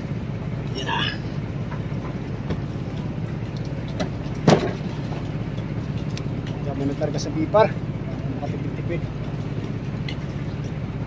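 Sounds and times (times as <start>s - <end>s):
boat engine rumbling: 0.0s - 11.0s.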